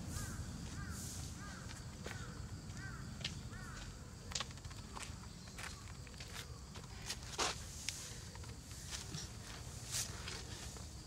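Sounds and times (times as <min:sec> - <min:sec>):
shoe scuffs on asphalt: 0:00.2 - 0:04.0, 0:05.0 - 0:11.0.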